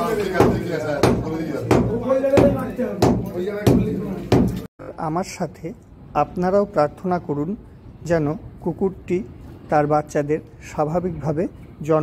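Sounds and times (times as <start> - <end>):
hammer striking brick wall: 0.0 - 4.7.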